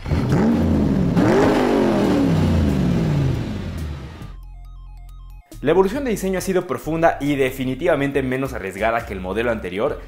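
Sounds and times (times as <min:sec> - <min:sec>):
car engine revving: 0:00.0 - 0:04.4.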